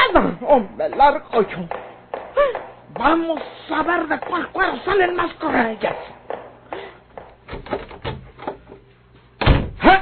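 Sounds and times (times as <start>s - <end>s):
wooden door knocks and clatters: 7.4s - 8.6s.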